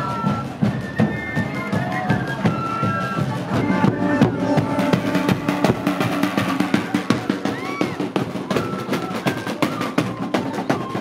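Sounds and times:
drums beaten with sticks: 0.0 - 11.0
wind instruments holding notes: 0.0 - 11.0
whistle-like note: 0.6 - 6.9.

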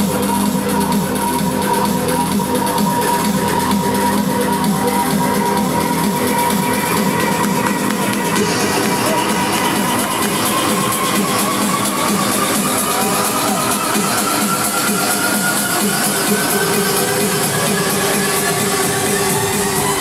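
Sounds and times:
loud electronic dance music: 0.0 - 20.0.

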